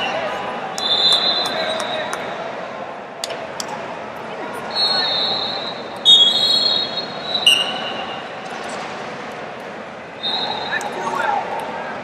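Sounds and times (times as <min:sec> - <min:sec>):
referee whistles: 0:00.8 - 0:02.2, 0:04.7 - 0:08.2, 0:10.2 - 0:11.2.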